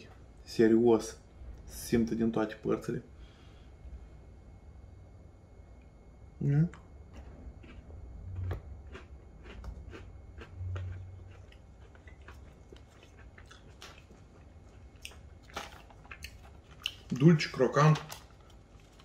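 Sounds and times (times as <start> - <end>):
quiet chewing: 6.7 - 17.2
biscuit crunching clicks: 8.4 - 19.0.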